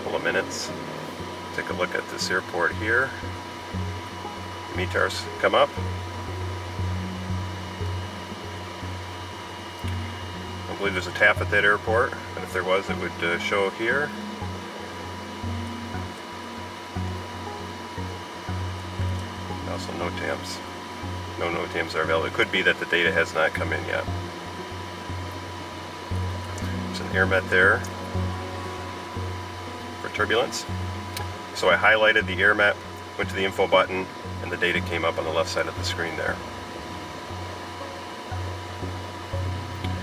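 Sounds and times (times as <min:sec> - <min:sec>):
constant high-pitched tone: 0:00.0 - 0:40.0
faint high whine: 0:00.0 - 0:40.0
steady low hum: 0:00.0 - 0:40.0.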